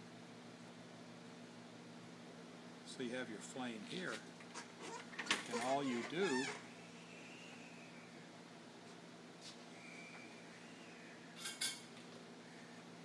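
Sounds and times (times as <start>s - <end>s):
marker pen squeaking on paper: 4.5s - 6.6s.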